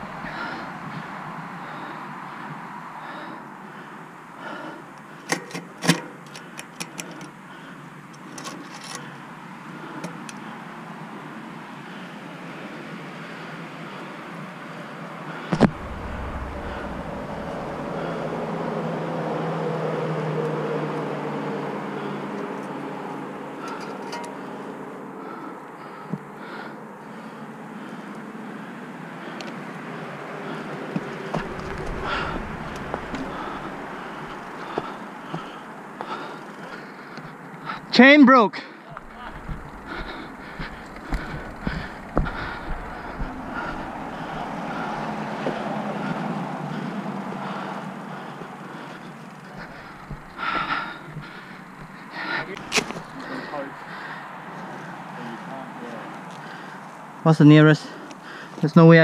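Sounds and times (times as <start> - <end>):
vehicle engine passing: 15.4 - 23.8, 29.8 - 36.0, 38.9 - 56.3.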